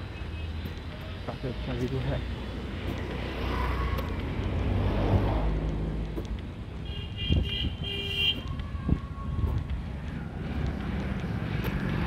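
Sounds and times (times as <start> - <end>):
road traffic rumble: 0.0 - 12.0
vehicle horn beeps: 6.9 - 8.4.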